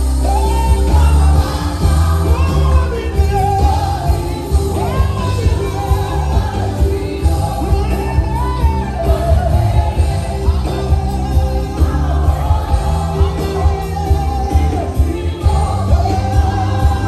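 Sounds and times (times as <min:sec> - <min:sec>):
band playing beat with bass: 0:00.0 - 0:17.0
choir singing: 0:00.0 - 0:17.0.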